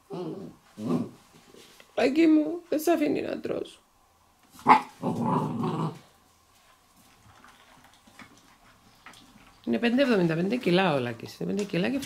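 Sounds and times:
puppy growling: 0:00.0 - 0:01.2, 0:04.6 - 0:06.2.

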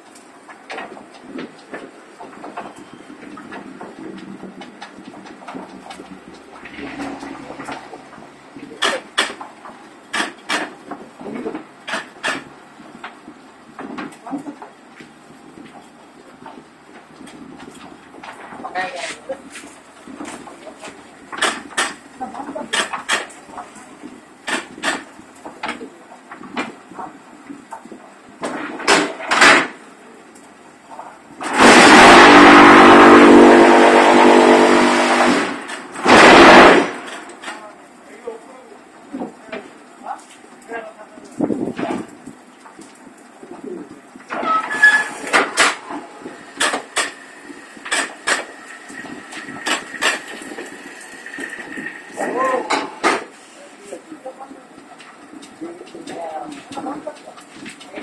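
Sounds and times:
metal clanks and knocks: 0:00.5 - 0:13.2
loud machine buzzing: 0:06.6 - 0:08.4, 0:31.5 - 0:37.0.

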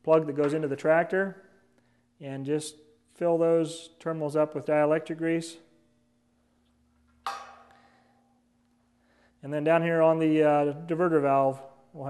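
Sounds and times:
sharp ringing knock: 0:07.3 - 0:07.8.

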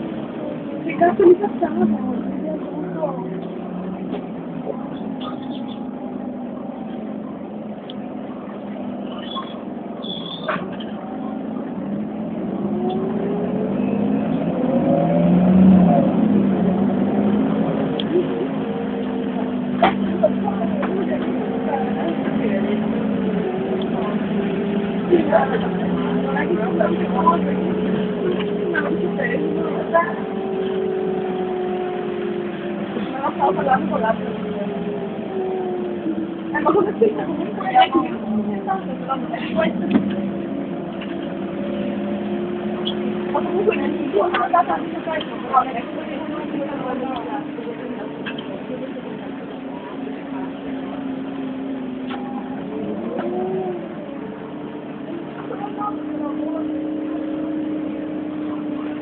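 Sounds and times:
bus engine droning: 0:00.0 - 0:59.0.

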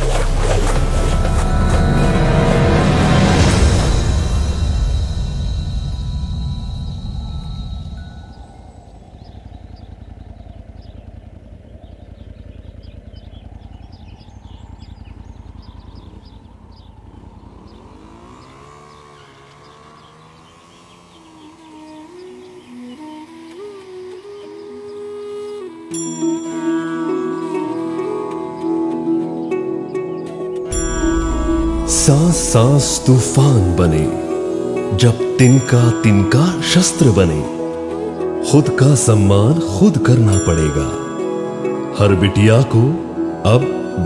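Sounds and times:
loud dramatic music: 0:00.0 - 0:08.4, 0:30.1 - 0:44.0
flute-like melody: 0:00.0 - 0:09.0, 0:21.7 - 0:44.0
motorcycle engine rumble: 0:00.0 - 0:44.0.

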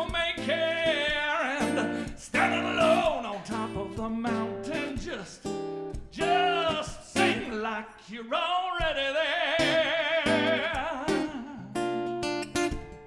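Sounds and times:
man singing: 0:00.0 - 0:12.0
acoustic guitar chords: 0:00.0 - 0:13.0.

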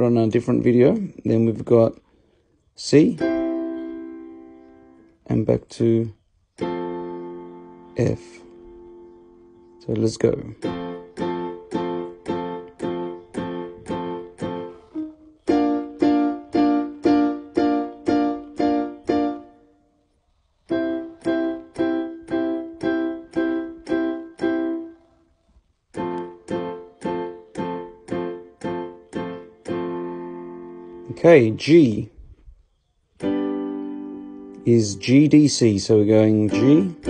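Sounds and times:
electronic keyboard playing chords: 0:02.8 - 0:19.9, 0:20.6 - 0:32.1, 0:33.1 - 0:37.0.

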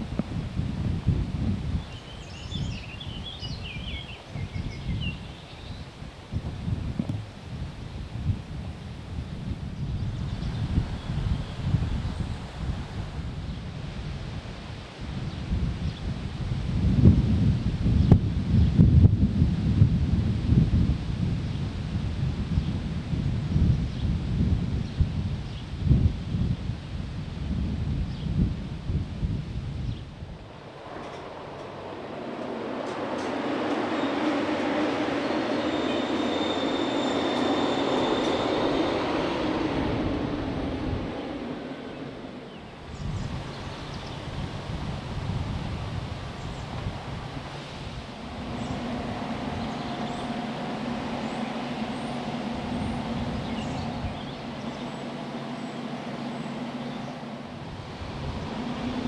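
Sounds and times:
wind buffeting microphone: 0:00.0 - 0:59.0
mechanical drone with high whine: 0:48.0 - 0:59.0.

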